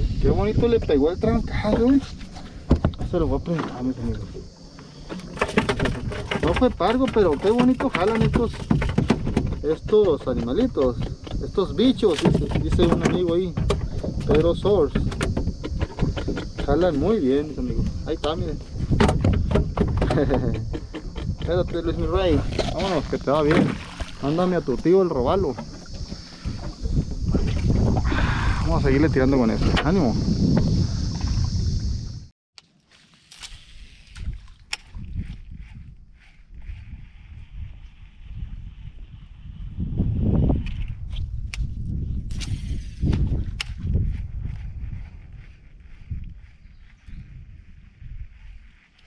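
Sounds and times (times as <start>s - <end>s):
wind rumble on microphone: 0.0s - 4.5s, 5.2s - 32.3s, 33.7s - 49.0s
water lapping against a boat: 20.4s - 28.5s.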